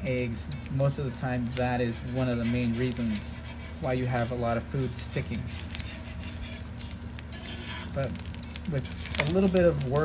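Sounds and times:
egg sizzling in butter: 0:00.0 - 0:10.0
metal spatula scraping: 0:00.3 - 0:09.9.

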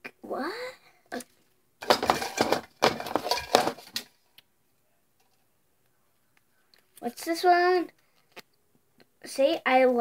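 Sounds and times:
rustling and clinking objects: 0:01.8 - 0:04.3.

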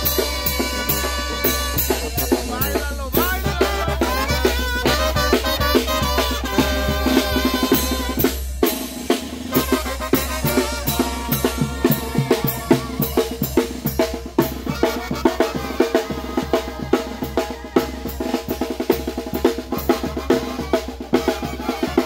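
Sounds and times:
brass band playing: 0:00.0 - 0:22.0
snare and bass drum beating: 0:00.0 - 0:22.0.

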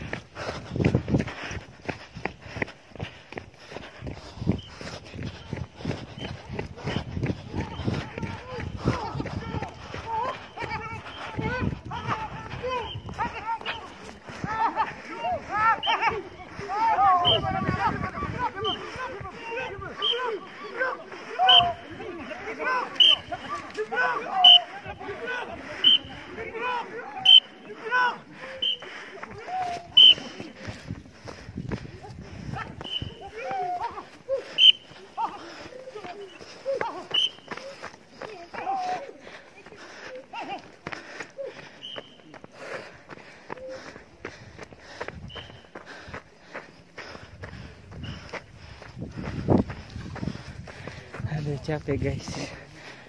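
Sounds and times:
crowd shouting: 0:05.1 - 0:31.2, 0:31.9 - 0:42.4.

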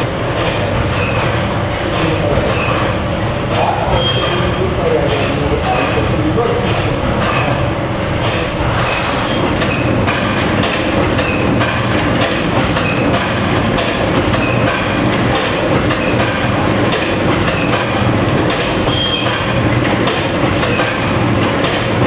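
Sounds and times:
machine clacks: 0:00.0 - 0:22.0
packing machines clattering: 0:00.0 - 0:22.0.

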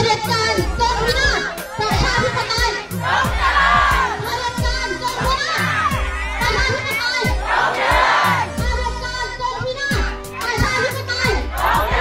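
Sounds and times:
low hum of music: 0:00.0 - 0:12.0
crowd calling out: 0:00.5 - 0:08.7, 0:11.4 - 0:12.0.

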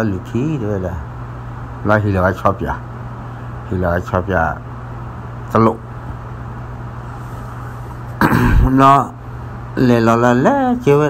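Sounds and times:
low hum: 0:05.0 - 0:09.8.

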